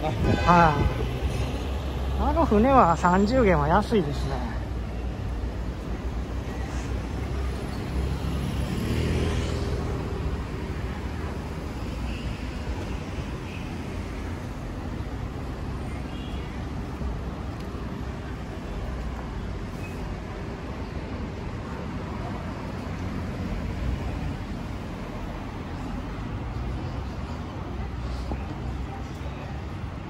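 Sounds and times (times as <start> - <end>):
vehicles passing: 0.0 - 30.0.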